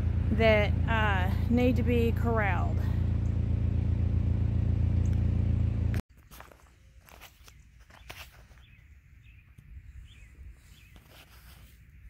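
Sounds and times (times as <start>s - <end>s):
vehicle engine humming: 0.0s - 6.0s
faint clicks and rustles: 6.1s - 8.9s.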